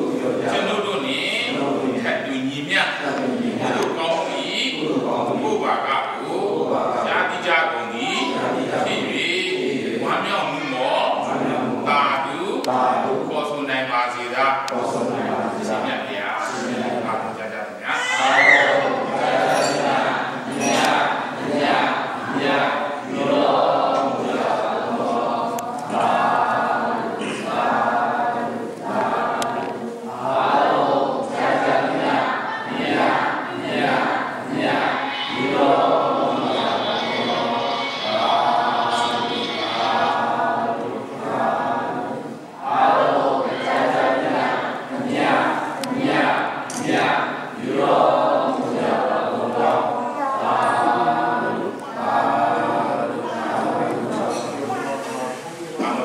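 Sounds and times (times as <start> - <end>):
group chanting prayers in unison: 0.0 - 56.0.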